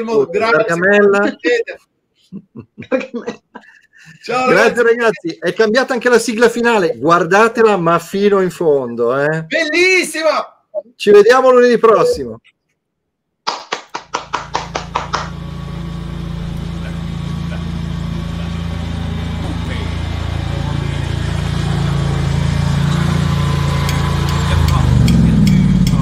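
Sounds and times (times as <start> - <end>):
engine running with low hum: 14.2 - 26.0.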